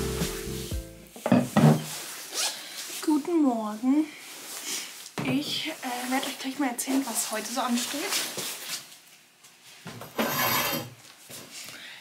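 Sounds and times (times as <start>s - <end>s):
fabric rustle: 1.7s - 9.9s
jacket zipper zipping: 2.1s - 2.6s.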